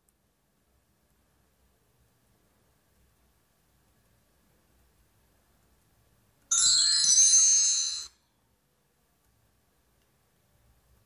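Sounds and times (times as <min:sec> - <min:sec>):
bright high-pitched chime: 0:06.5 - 0:08.2.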